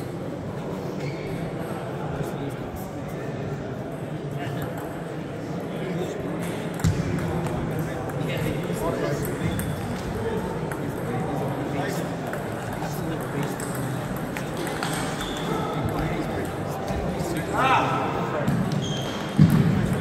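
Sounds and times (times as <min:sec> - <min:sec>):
murmur of voices: 0:00.0 - 0:20.0
distant table tennis clicks: 0:12.2 - 0:16.6.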